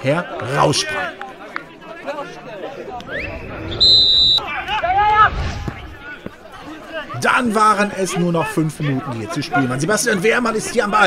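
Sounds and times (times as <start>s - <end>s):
players shouting: 0.0s - 11.0s
referee's whistle blast: 3.1s - 4.5s.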